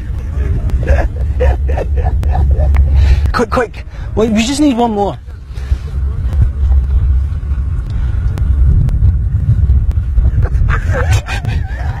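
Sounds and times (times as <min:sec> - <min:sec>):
large fire rumbling: 0:00.0 - 0:12.0.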